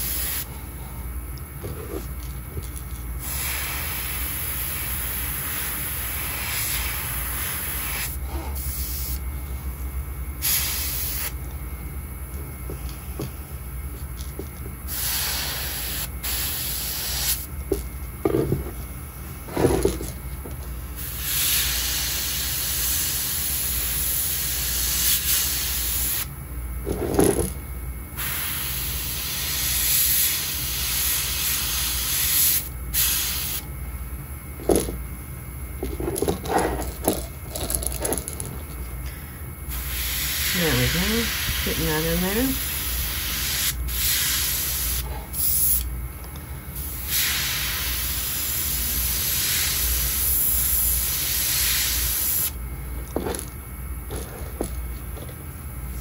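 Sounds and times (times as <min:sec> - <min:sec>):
airbrush air hiss: 0:00.0 - 0:00.5, 0:03.2 - 0:09.2, 0:10.4 - 0:11.4, 0:14.9 - 0:17.5, 0:20.9 - 0:26.3, 0:28.2 - 0:33.7, 0:39.7 - 0:45.9, 0:46.8 - 0:52.6.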